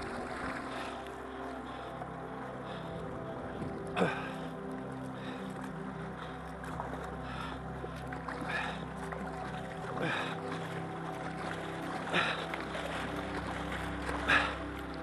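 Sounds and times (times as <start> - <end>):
kayak paddle splashing: 0.0 - 15.0
music with sustained notes: 0.0 - 15.0.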